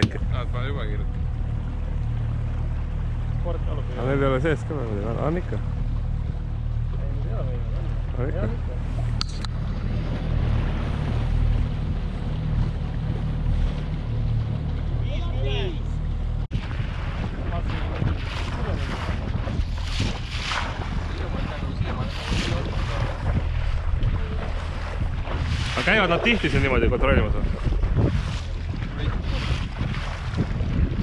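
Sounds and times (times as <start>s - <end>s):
boat motor running: 0.0s - 31.0s
water washing around hull: 0.0s - 31.0s
wind buffeting microphone: 0.0s - 31.0s.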